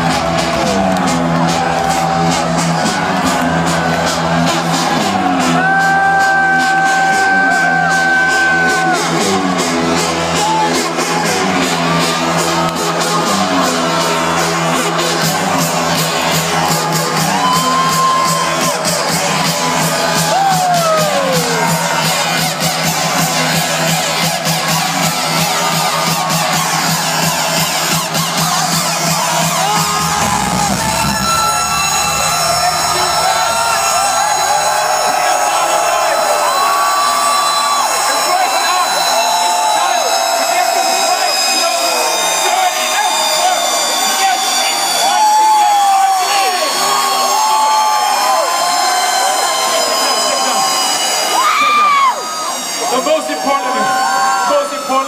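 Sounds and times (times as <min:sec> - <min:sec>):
crowd cheering and yelling: 0:00.0 - 0:55.0
electro house music with heavy bass: 0:00.0 - 0:55.0
high sustained synth tones: 0:29.9 - 0:35.9.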